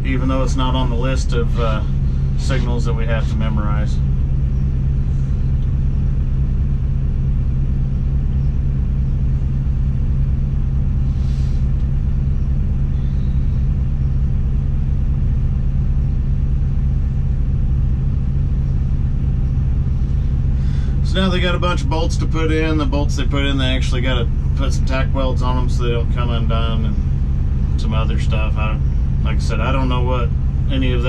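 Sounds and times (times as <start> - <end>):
diesel engine running: 0.0 - 31.0.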